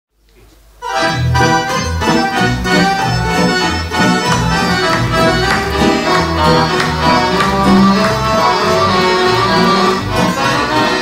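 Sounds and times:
accordion playing folk tune: 0:00.8 - 0:11.0
low bass notes: 0:01.0 - 0:11.0.

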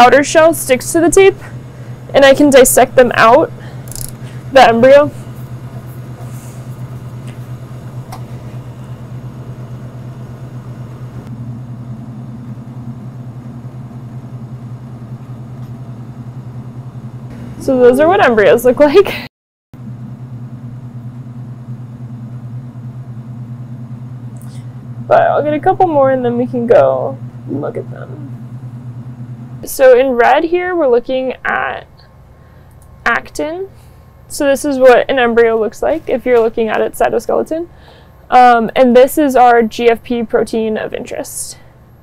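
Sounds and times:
low electrical hum: 0:00.0 - 0:42.0.

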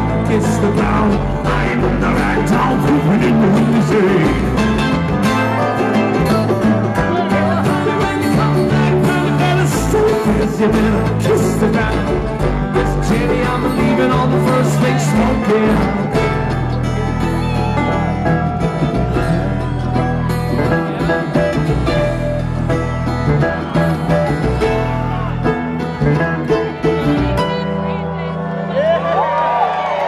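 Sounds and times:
sliding dobro: 0:00.0 - 0:28.4
strummed acoustic guitar: 0:00.0 - 0:28.4
mandolin: 0:00.0 - 0:28.8
bass line: 0:00.0 - 0:30.0.

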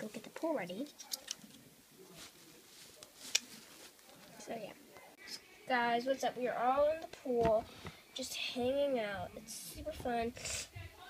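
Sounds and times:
faint rustling: 0:00.0 - 0:05.0.

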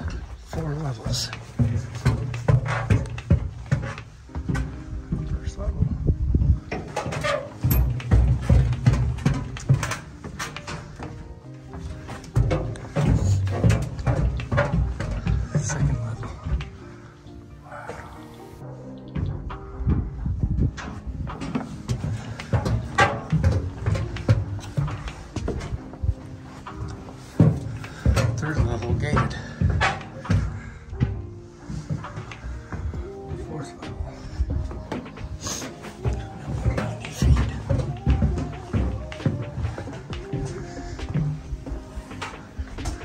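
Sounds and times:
background music: 0:00.0 - 0:43.0.

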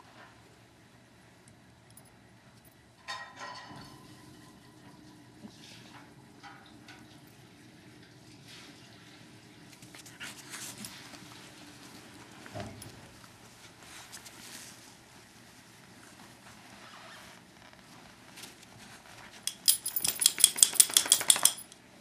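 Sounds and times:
dogs scuffling and pawing: 0:09.7 - 0:21.7.

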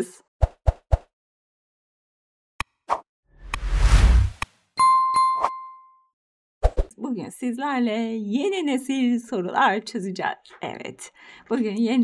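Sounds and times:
bell-like ding: 0:04.8 - 0:06.1.

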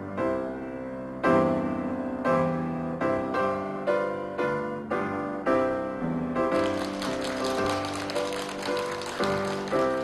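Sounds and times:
gentle piano music: 0:00.0 - 0:10.0
audience applause: 0:06.6 - 0:10.0.

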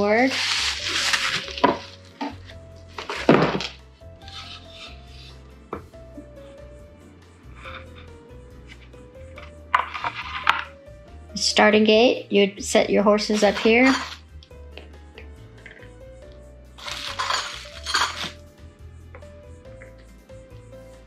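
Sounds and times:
plastic and bubble wrap crinkling: 0:00.0 - 0:04.9, 0:16.8 - 0:18.4
quiet background music: 0:00.0 - 0:21.0.

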